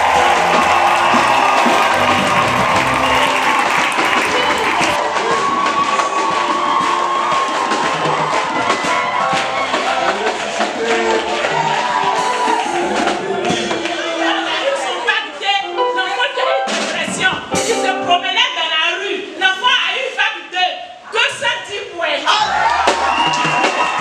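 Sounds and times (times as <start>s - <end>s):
congregation clapping: 0.0s - 14.9s, 22.7s - 24.0s
congregation singing: 8.0s - 15.4s
worship music: 17.6s - 18.7s.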